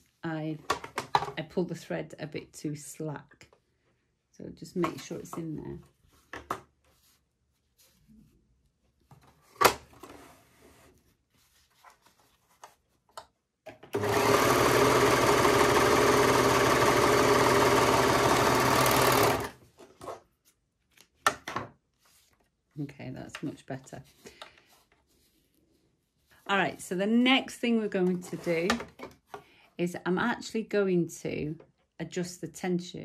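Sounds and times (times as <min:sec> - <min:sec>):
overlocker sewing machine running: 0:14.0 - 0:19.6.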